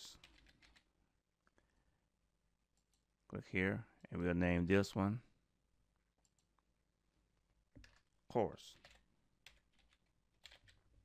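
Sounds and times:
computer keyboard keystrokes: 0.2 - 0.8, 8.8 - 10.8.

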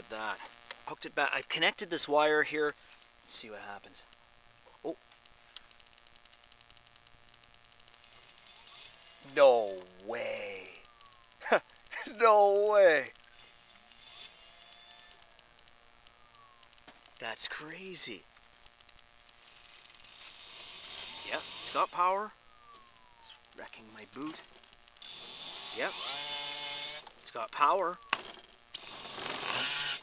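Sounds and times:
electric scooter hub motor ticking: 5.2 - 17.6, 18.6 - 22.2, 22.8 - 30.0.

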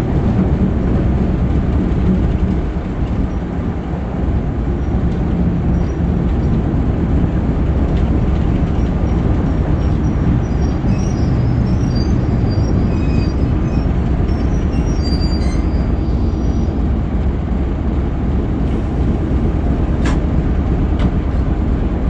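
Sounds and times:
train wheels rumbling on rails: 0.0 - 22.0
faint high squeals: 9.8 - 16.8
sharp click: 20.0 - 20.2.

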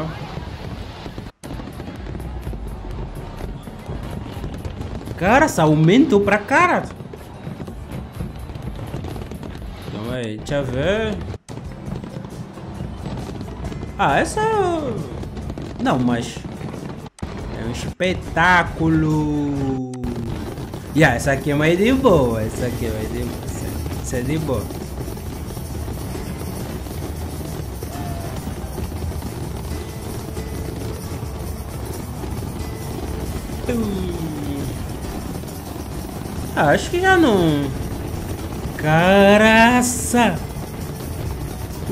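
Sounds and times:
fireworks barrage rumbling: 0.0 - 41.9
background music: 1.5 - 41.9
noisy haze: 20.0 - 41.9.

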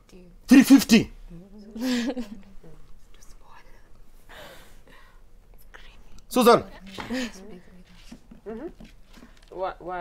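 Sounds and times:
whispering and murmured voices: 1.2 - 4.2, 5.6 - 8.2.

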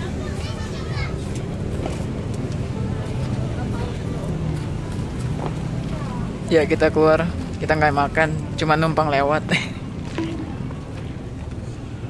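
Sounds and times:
low rumble of vehicles: 0.0 - 12.0.

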